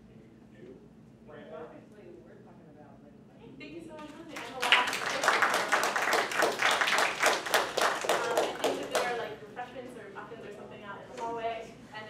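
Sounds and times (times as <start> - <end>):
audience applause: 4.4 - 9.1.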